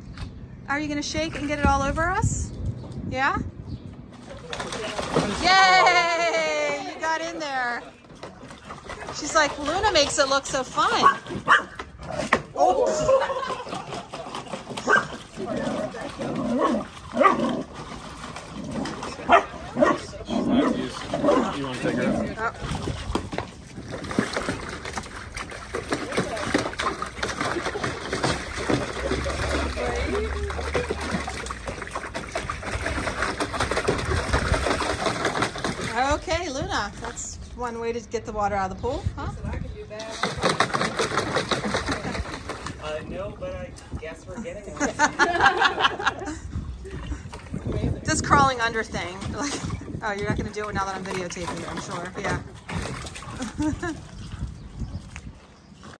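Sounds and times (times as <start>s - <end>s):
people talking: 0.7s - 2.5s, 3.1s - 3.5s, 4.3s - 8.0s, 9.1s - 11.2s, 19.8s - 22.8s, 28.9s - 31.2s, 35.9s - 40.2s, 47.6s - 52.5s
dog splashing water in a pool: 4.0s - 38.1s, 38.8s - 56.0s
people laughing: 5.2s - 7.8s, 12.6s - 14.5s, 41.4s - 42.7s, 44.3s - 47.2s, 53.4s - 54.1s
puppies barking: 10.8s - 11.9s, 14.7s - 17.8s, 19.0s - 22.1s.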